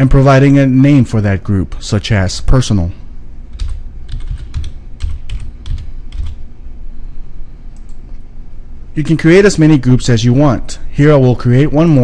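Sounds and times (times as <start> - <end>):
computer keyboard typing: 3.5 - 6.4.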